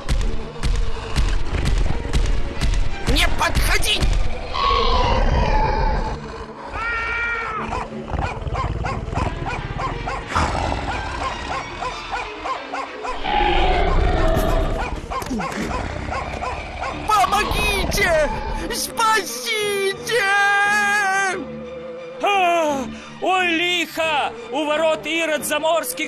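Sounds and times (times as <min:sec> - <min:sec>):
background music: 0:00.0 - 0:26.0
cartoon dragon roaring: 0:13.2 - 0:14.9.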